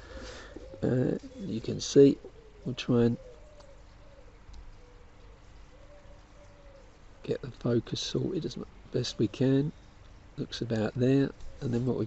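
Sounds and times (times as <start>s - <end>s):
pigeon cooing: 0.0s - 7.4s.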